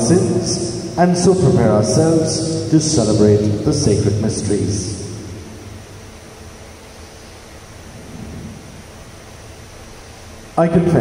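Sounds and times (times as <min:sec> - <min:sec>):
room tone hiss: 0:00.0 - 0:11.0
faint low swell: 0:07.8 - 0:09.4.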